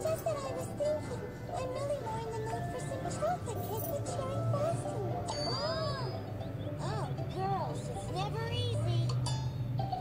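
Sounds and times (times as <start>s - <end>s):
squeaky cartoon voices: 0.0s - 9.2s
light music: 0.0s - 10.0s.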